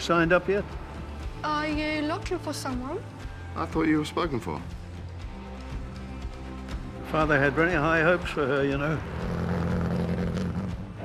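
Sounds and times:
car engine running: 0:08.0 - 0:11.0.

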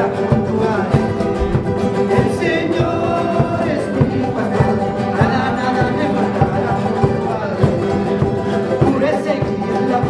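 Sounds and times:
people singing: 0:00.0 - 0:10.0
strummed guitars: 0:00.0 - 0:10.0
low drum beats: 0:00.3 - 0:09.0.

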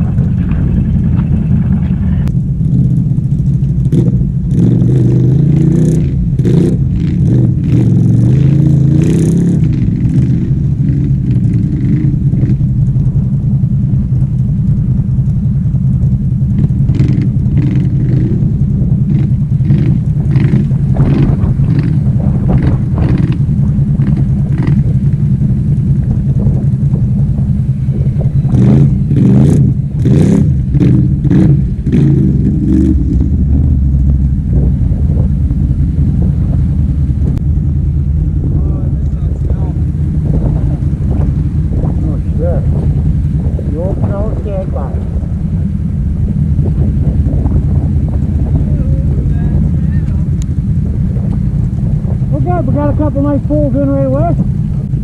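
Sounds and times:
atv engine running loud: 0:00.0 - 0:55.0.

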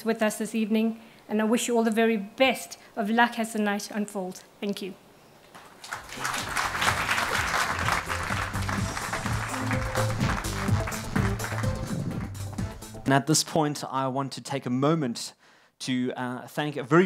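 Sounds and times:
audience applause: 0:05.6 - 0:12.7
music playing: 0:06.2 - 0:13.2.

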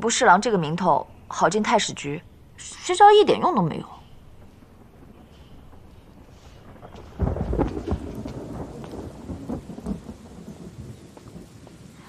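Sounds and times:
steady rain: 0:00.0 - 0:12.0
thunder rumbling: 0:00.0 - 0:12.0.

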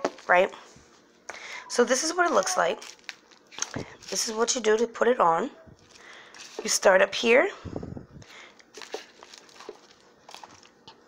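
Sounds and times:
paper card rustling: 0:01.9 - 0:04.5, 0:05.8 - 0:06.8, 0:08.6 - 0:10.8.

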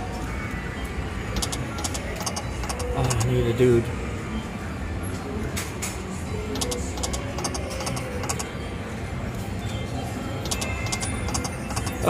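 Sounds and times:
slot machine game music: 0:00.0 - 0:03.9, 0:06.6 - 0:08.6, 0:09.2 - 0:12.0
casino hum: 0:06.6 - 0:12.0.

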